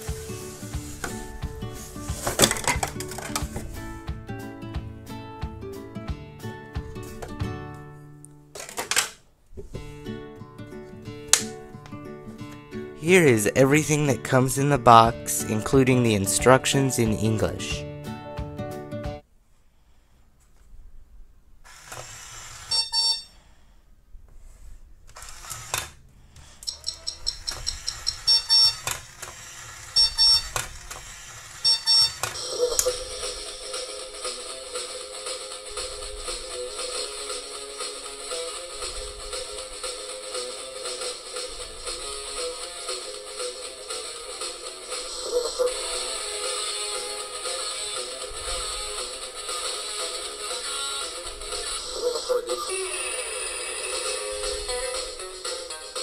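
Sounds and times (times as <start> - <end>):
tune from small speaker: 13.0 - 17.9, 22.7 - 23.3, 26.8 - 28.9, 29.9 - 30.6, 31.6 - 56.0
sharp alarm beeps: 22.7 - 23.3, 26.7 - 28.9, 30.0 - 30.5, 31.6 - 33.1.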